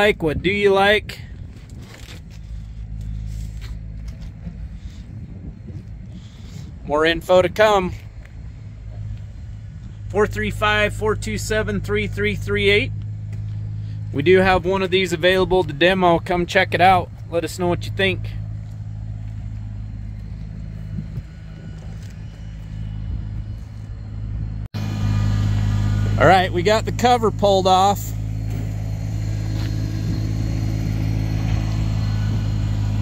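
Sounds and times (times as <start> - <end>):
low steady rumble: 0.0 - 33.0
hum: 1.1 - 33.0.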